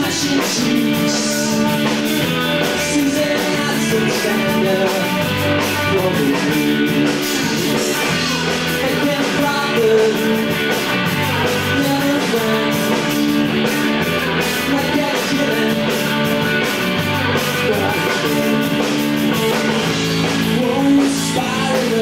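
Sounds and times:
bass guitar: 0.0 - 22.0
drum kit steady beat: 0.0 - 22.0
electric guitars: 0.0 - 22.0.

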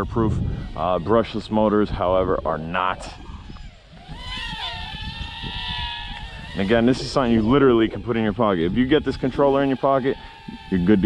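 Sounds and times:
quadcopter motors whining: 0.0 - 11.0.

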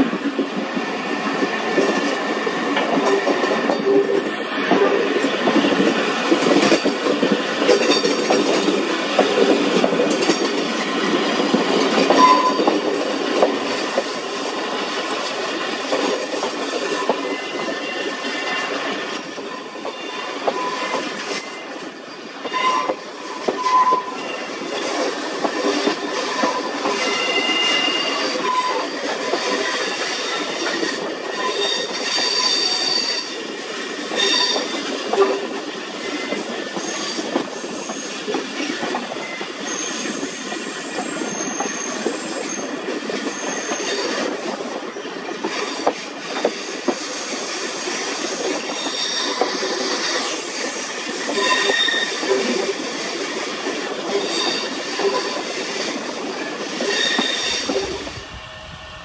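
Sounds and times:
train wheels rumbling on track: 0.0 - 59.0
train wheel squeals: 11.7 - 14.5, 15.7 - 59.0.

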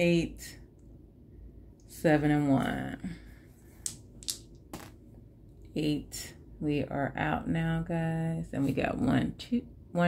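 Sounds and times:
dice landing on paper: 3.9 - 5.0.

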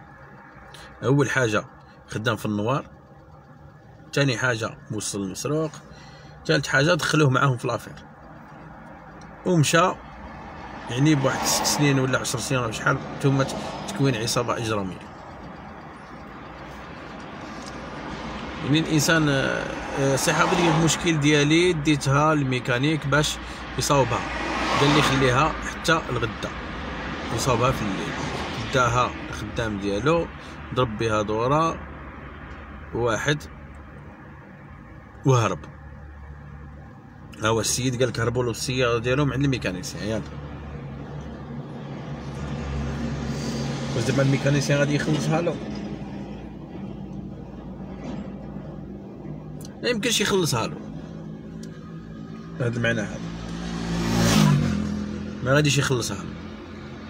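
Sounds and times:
car engine hum from inside cabin: 0.0 - 57.0.

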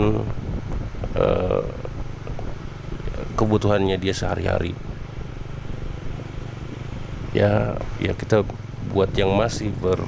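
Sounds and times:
road noise: 0.0 - 10.0.

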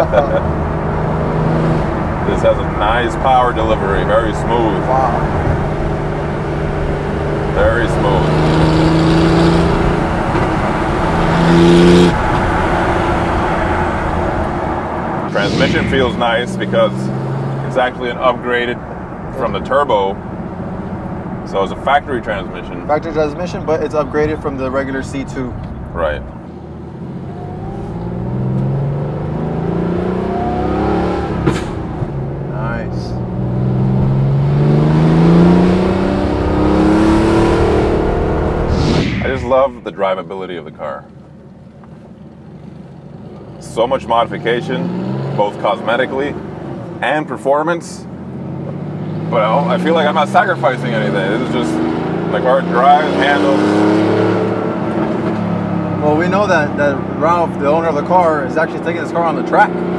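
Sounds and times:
car engine accelerating: 0.0 - 59.9.

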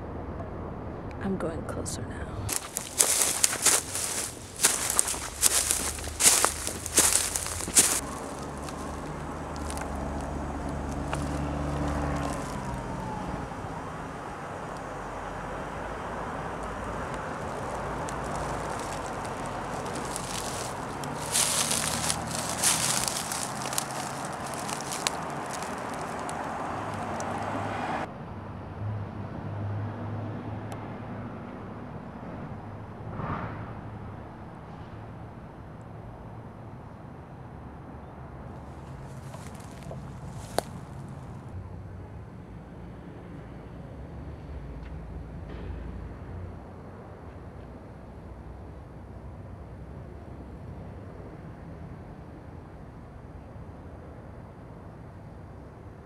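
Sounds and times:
footsteps crunching through dry leaves: 2.5 - 13.4, 16.3 - 27.7, 38.6 - 41.4
steady low rumble: 14.6 - 27.5.

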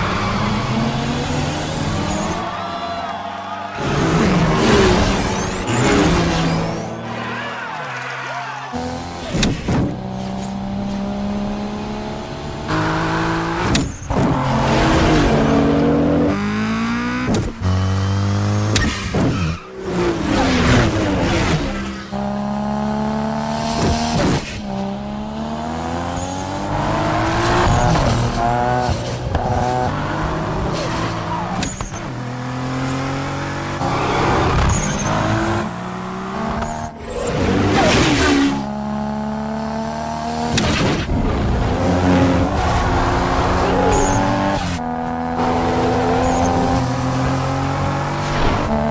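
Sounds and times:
sports car engines accelerating: 0.0 - 48.9.

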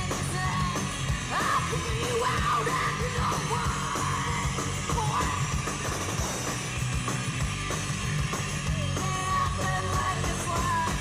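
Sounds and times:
person yelling lead vocal: 0.0 - 5.6, 8.8 - 11.0
electric guitars: 0.0 - 11.0
steady drum beat: 0.0 - 11.0.

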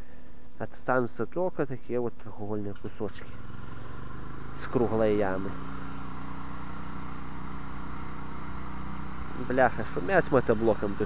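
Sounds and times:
walk-behind tractor engine running: 2.7 - 11.0.

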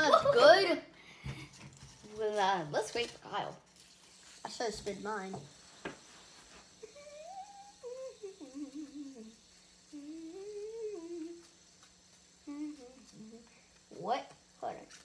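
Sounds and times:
child humming a tune: 6.8 - 11.6, 12.4 - 13.6.

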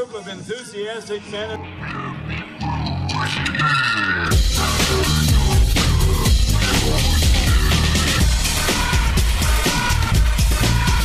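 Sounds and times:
music with guitar and bass: 1.6 - 11.0.

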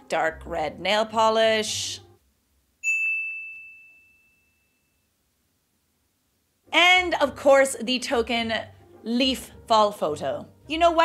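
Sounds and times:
high bell-like ding: 2.8 - 5.1.

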